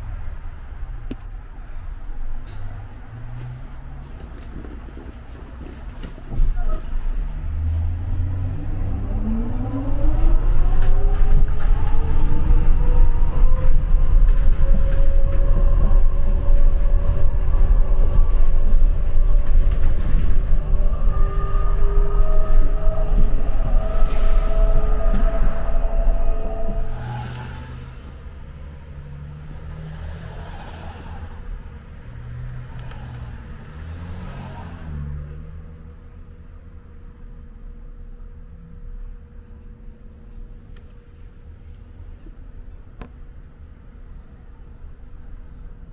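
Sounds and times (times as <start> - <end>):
bus road rumble: 0.0 - 45.9.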